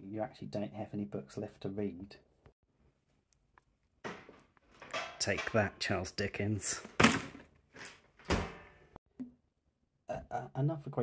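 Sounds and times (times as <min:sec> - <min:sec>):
metal bin lid slamming shut: 0:08.2 - 0:08.8.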